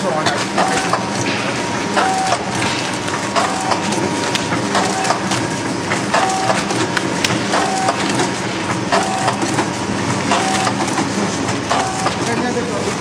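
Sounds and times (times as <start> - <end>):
machine hum: 0.0 - 13.0.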